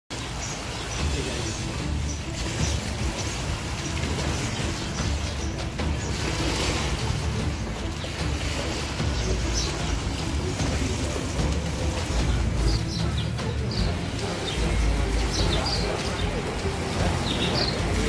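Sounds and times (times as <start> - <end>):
high bird chirps: 0.1 - 18.0.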